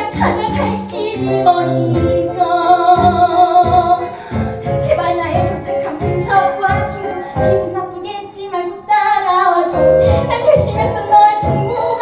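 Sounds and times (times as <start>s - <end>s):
girl singing: 0.0s - 4.1s, 4.8s - 12.0s.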